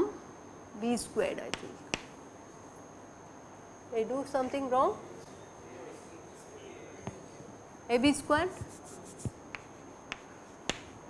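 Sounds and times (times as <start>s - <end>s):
chalk tapping on blackboard: 1.5s - 2.2s, 8.3s - 11.0s.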